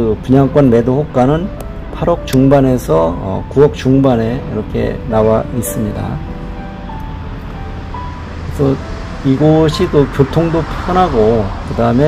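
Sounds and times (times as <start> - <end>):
road traffic noise: 0.0 - 12.0
soft background music: 0.0 - 12.0.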